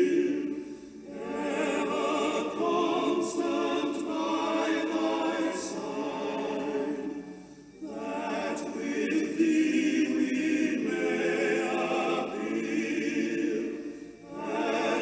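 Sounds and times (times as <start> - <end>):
choir singing: 0.0 - 15.0.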